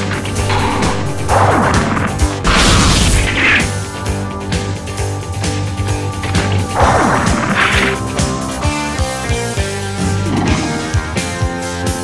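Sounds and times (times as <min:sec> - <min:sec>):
crashing impact effects: 0:00.0 - 0:03.8
background music: 0:00.0 - 0:12.0.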